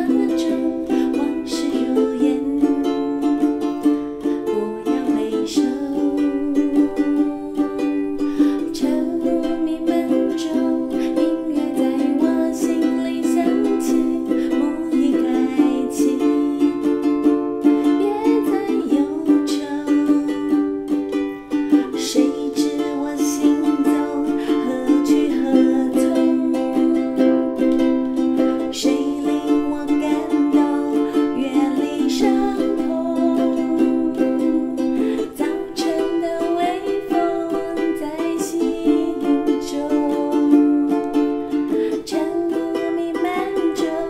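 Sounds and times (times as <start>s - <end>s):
ukulele strumming: 0.0s - 44.0s.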